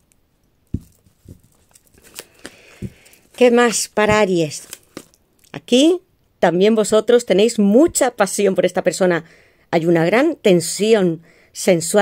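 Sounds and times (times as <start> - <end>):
card rustle: 0.8 - 5.2.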